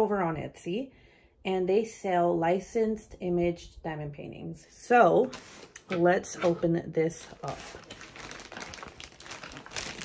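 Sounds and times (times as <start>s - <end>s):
plastic bag crinkling: 6.4s - 10.0s.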